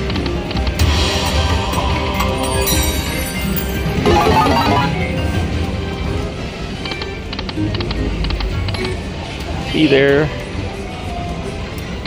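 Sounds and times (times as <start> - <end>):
short electronic melody: 4.0 - 5.2.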